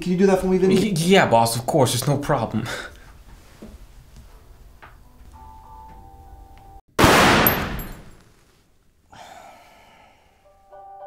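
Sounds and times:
pistol shot with echo: 7.0s - 8.2s.

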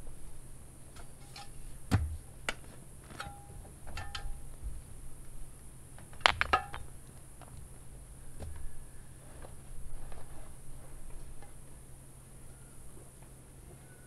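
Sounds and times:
stones clacking and knocking: 6.1s - 6.9s.

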